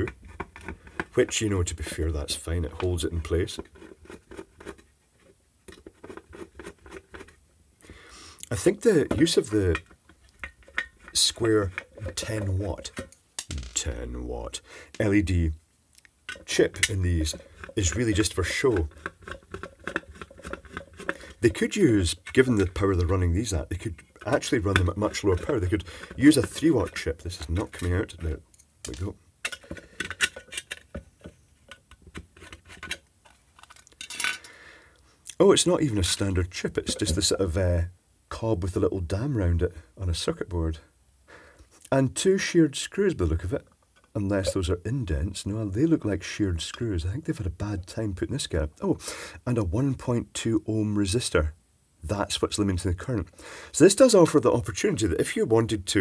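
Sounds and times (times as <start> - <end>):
screwdriver clicking and scraping metal: 0.0 - 1.4, 3.5 - 7.4, 9.2 - 14.0, 16.3 - 34.5.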